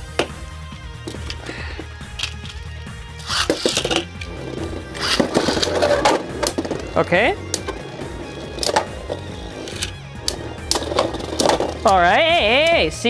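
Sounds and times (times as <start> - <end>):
background music with bass line: 0.0 - 13.0
spinning tops clashing: 1.0 - 13.0
spinning tops clattering: 1.0 - 13.0.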